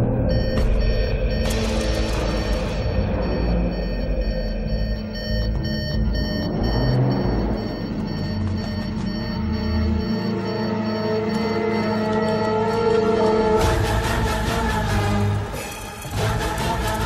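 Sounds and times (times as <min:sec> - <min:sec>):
heavy low bass pulse: 0:00.0 - 0:11.0
sustained tones: 0:00.0 - 0:15.5.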